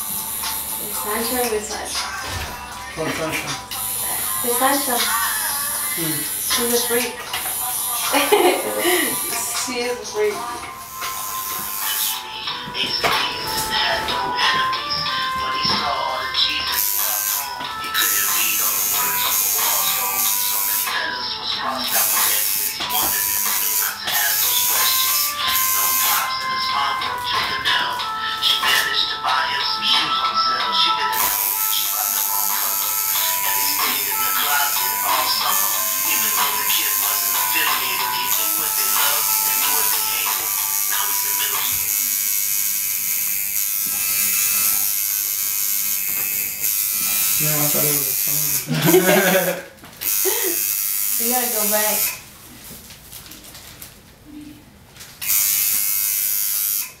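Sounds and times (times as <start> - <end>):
tattoo machine buzzing: 0.0 - 29.5, 30.9 - 52.3, 55.2 - 57.0
loud background music: 0.0 - 40.9.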